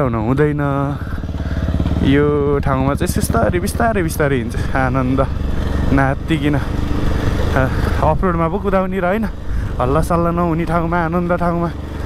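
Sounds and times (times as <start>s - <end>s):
motorcycle engine running: 0.0s - 12.0s
rider talking: 0.0s - 12.0s.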